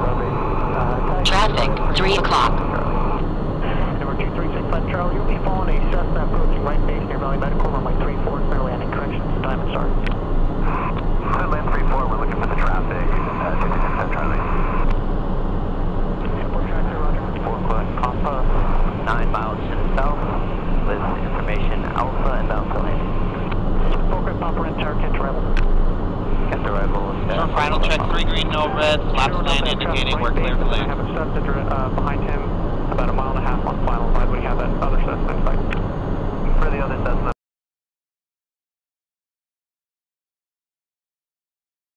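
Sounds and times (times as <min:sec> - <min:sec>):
man speaking: 0:00.0 - 0:02.9, 0:03.6 - 0:14.5, 0:16.2 - 0:23.2, 0:23.8 - 0:25.6, 0:26.4 - 0:35.8, 0:36.5 - 0:37.4
voices talking: 0:00.0 - 0:14.8, 0:16.2 - 0:25.6, 0:26.3 - 0:37.4
jet engine drone: 0:00.0 - 0:37.3.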